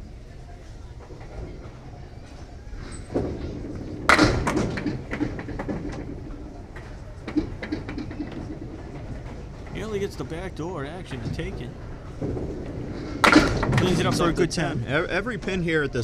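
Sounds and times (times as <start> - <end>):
bowling ball rolling on wooden lane: 2.9 - 9.8, 11.2 - 14.6
ball crashing into pins: 3.1 - 8.6, 12.2 - 14.2.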